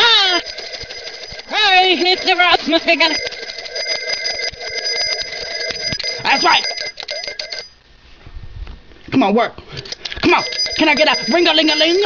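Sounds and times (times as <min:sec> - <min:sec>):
hand bell ringing: 0:00.0 - 0:07.8, 0:10.3 - 0:12.0.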